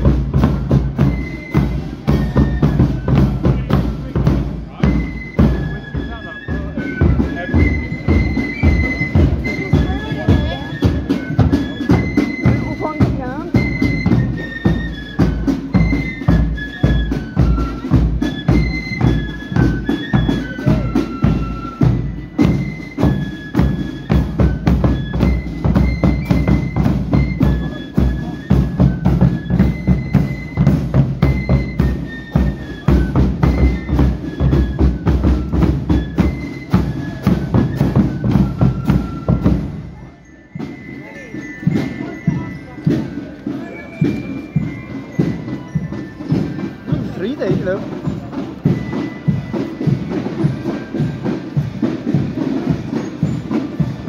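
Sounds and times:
cymbals: 0:00.0 - 0:54.0
flute melody: 0:00.0 - 0:54.0
side drums: 0:00.0 - 0:54.0.

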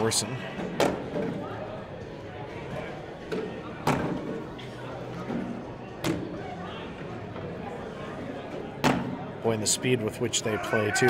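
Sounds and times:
low background voices: 0:00.0 - 0:11.0.

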